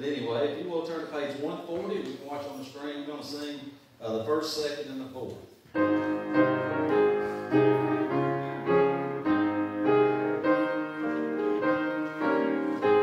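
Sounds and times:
piano playing hymn chords: 0:05.7 - 0:13.0.

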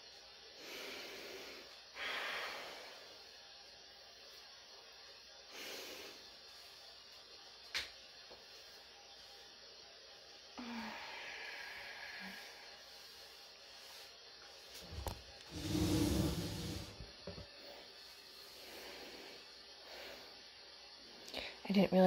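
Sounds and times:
hiss: 0:00.1 - 0:21.6
woman's breathy exhale: 0:10.6 - 0:12.6
faint rustling: 0:14.8 - 0:17.0.

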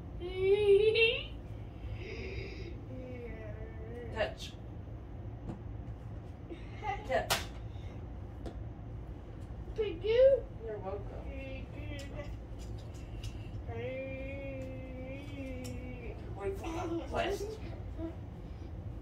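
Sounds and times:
low room hum: 0:00.0 - 0:19.0.

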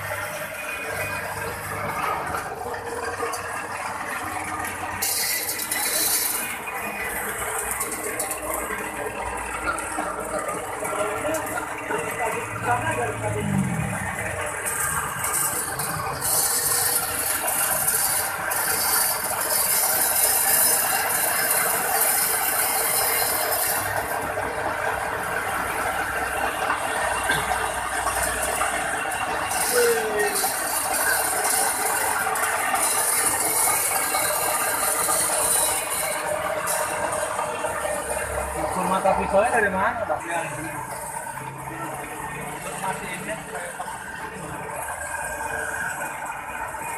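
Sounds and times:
electric coffee grinder grinding: 0:00.0 - 0:46.9.

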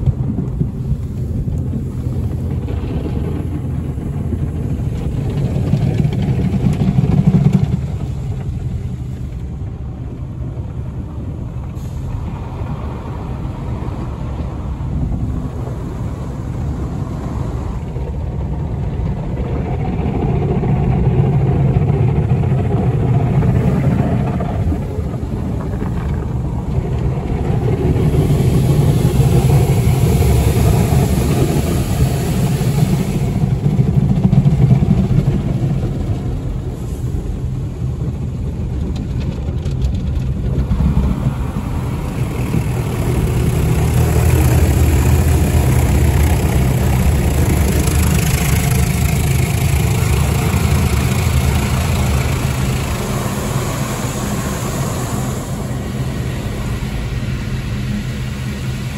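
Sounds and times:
car wash brushes and spray: 0:00.0 - 0:18.6, 0:19.7 - 0:58.9
car engine idling: 0:00.0 - 0:58.9
low rumble: 0:00.0 - 0:58.9.

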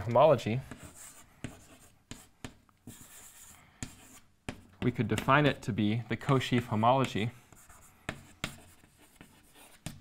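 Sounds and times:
chalk scratching on chalkboard: 0:00.6 - 0:05.4, 0:06.3 - 0:10.0
chalk tapping on chalkboard: 0:00.6 - 0:05.5, 0:06.2 - 0:10.0.

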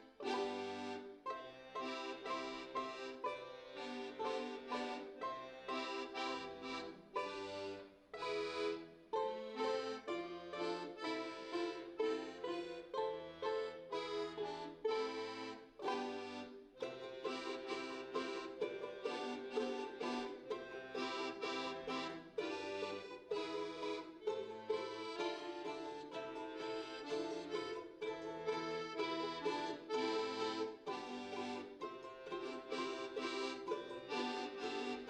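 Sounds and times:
accordion melody: 0:00.0 - 0:35.0
balalaikas strumming: 0:00.0 - 0:35.0.

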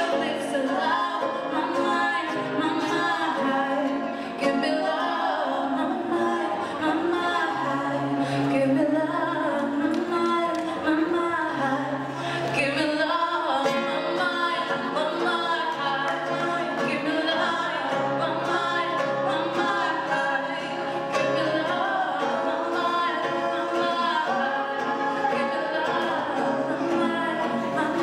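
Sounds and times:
acoustic guitar: 0:00.0 - 0:28.0
woman singing into microphone: 0:00.0 - 0:28.0.

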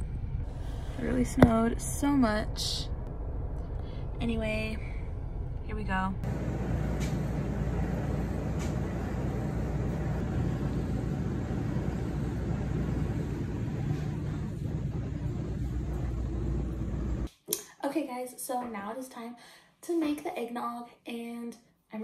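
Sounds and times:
low background rumble: 0:00.0 - 0:17.3.

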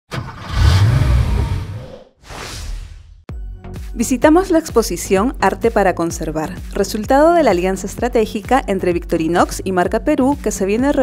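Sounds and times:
car engine revving: 0:00.1 - 0:02.0.

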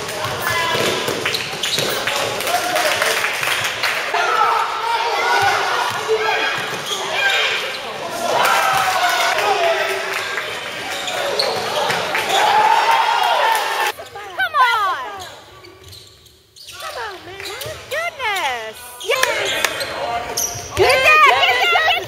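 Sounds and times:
sneaker squeaks on court floor: 0:00.2 - 0:02.1, 0:06.4 - 0:08.0, 0:10.9 - 0:12.1, 0:14.0 - 0:21.1
echoing voices: 0:13.6 - 0:15.6, 0:16.8 - 0:22.0.

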